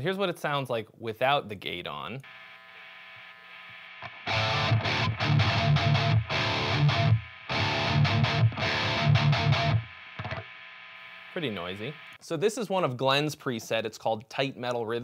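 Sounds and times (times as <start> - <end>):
amp hum and hiss: 0.0 - 15.0
distorted electric guitar riff: 2.2 - 12.2.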